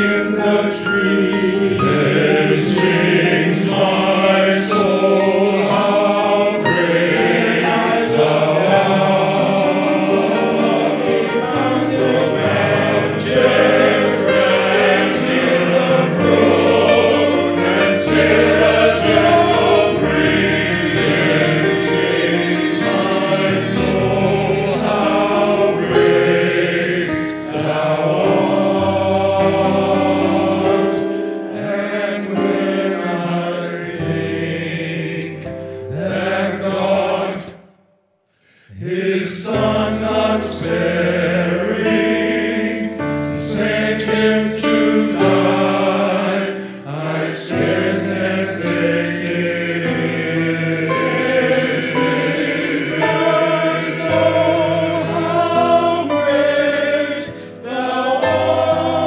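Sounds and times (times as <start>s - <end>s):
men's choir singing in harmony: 0.0s - 37.8s, 38.5s - 59.0s.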